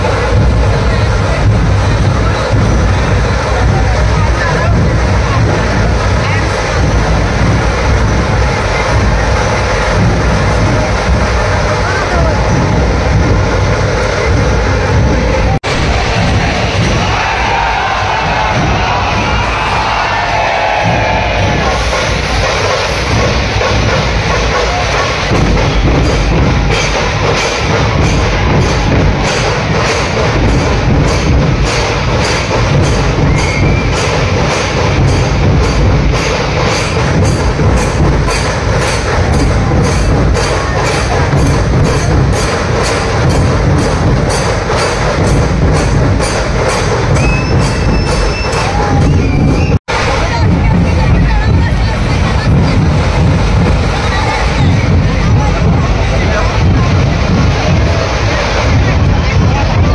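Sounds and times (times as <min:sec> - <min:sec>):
crowd cheering: 0:00.0 - 0:59.9
procession music with drumming: 0:00.0 - 0:59.9
steady drum beat: 0:00.0 - 0:59.9.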